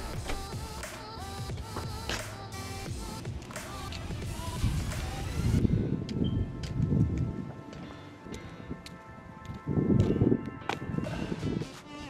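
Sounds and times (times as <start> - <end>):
hip-hop beat with bass hits: 0.0 - 12.0.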